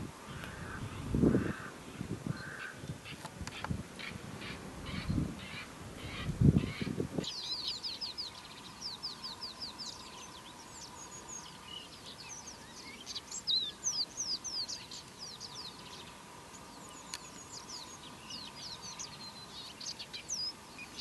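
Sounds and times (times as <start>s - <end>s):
wind on microphone: 0.0s - 7.5s
birds calling: 0.2s - 21.0s.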